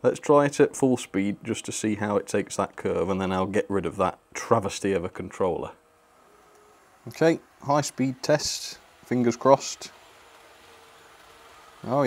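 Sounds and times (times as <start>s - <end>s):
model train running on track: 6.2s - 12.0s.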